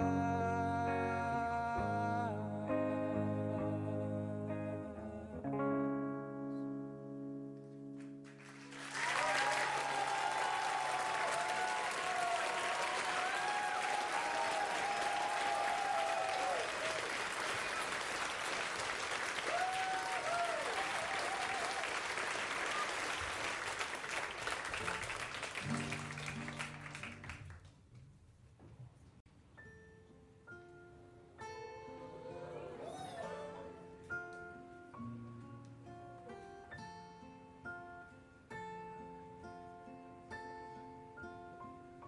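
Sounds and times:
guitar notes: 0.0 - 8.4
guitar chord ringing: 5.6 - 8.2
audience applauding: 8.0 - 27.7.

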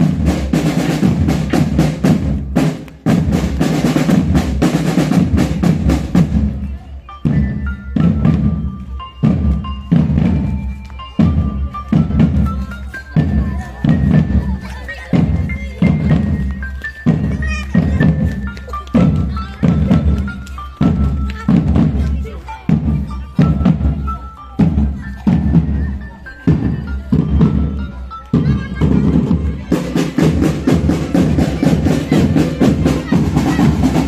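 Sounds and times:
marching drum band: 0.0 - 34.0.

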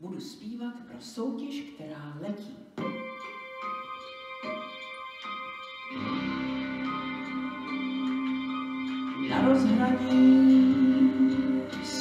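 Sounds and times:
plucked notes: 2.8 - 12.0.

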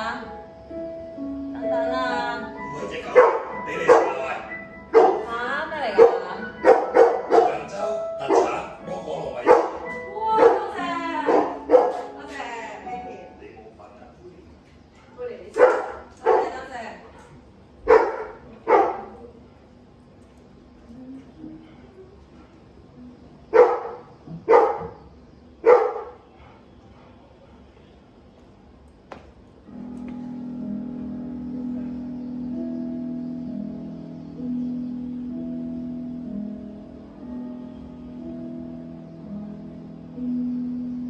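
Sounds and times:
background music: 0.0 - 14.1, 29.6 - 41.0
dog barking: 3.1 - 5.3, 5.9 - 8.7, 9.4 - 10.7, 11.3 - 12.1, 15.5 - 19.2, 23.5 - 25.0, 25.6 - 27.2.

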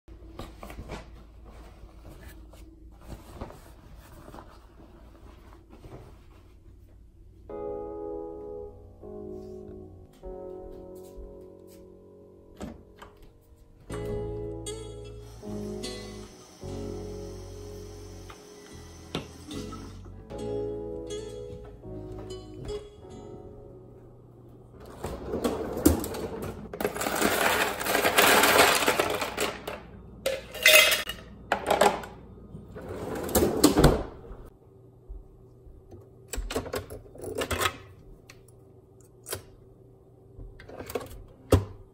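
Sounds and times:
bedding rustling: 0.3 - 7.0
low room hum: 11.3 - 41.9
ice cubes clattering: 26.8 - 29.7.

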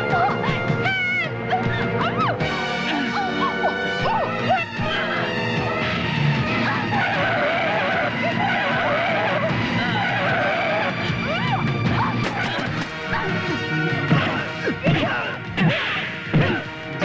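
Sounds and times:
dramatic film score: 0.0 - 17.0.

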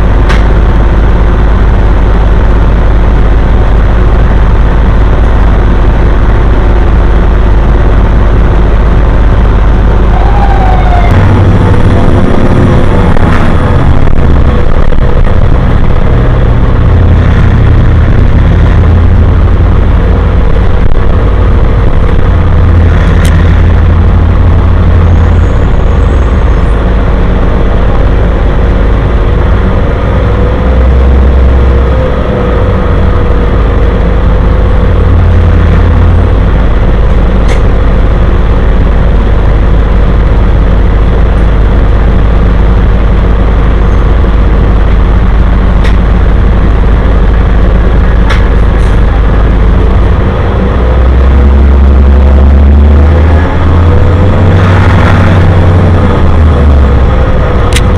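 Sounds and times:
bus engine and road drone: 0.0 - 57.9.

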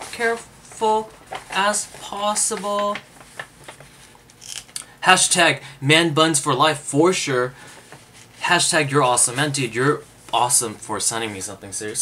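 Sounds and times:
paper rustling: 0.0 - 4.6.

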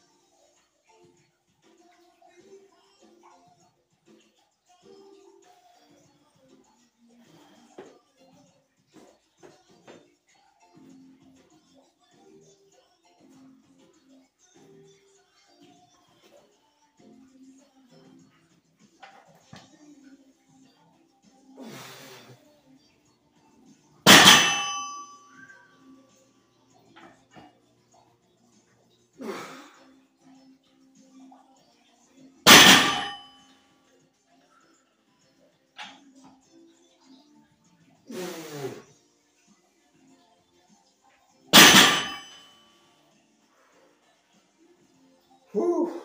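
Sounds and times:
barbell clanging on floor: 24.1 - 25.5, 32.5 - 33.3, 41.6 - 42.4.

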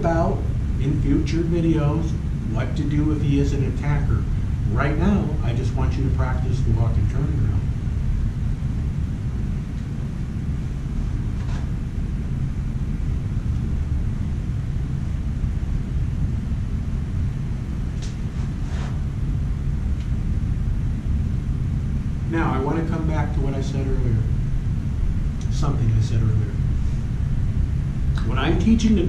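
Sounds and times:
low background rumble: 0.0 - 29.0.

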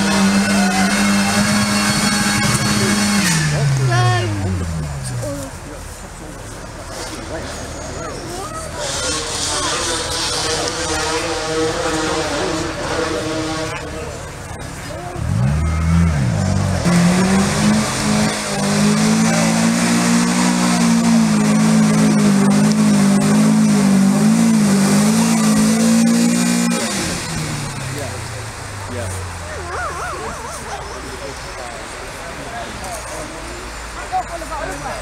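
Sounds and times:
car engine revving under load: 0.0 - 34.1
people's voices: 0.0 - 35.0.

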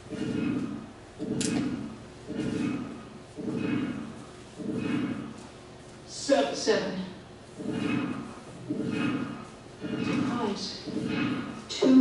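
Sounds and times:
low radio signal pulses: 0.0 - 5.5, 7.4 - 12.0.

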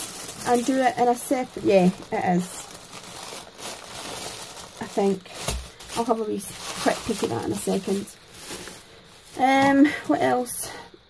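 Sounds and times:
tissue paper rustling: 0.0 - 10.5.

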